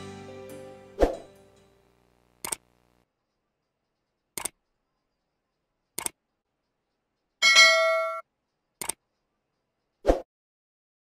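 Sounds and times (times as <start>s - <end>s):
mouse click: 2.4s - 2.6s, 4.4s - 4.6s, 6.0s - 6.2s, 8.8s - 9.0s
bright bell chime: 7.4s - 8.2s.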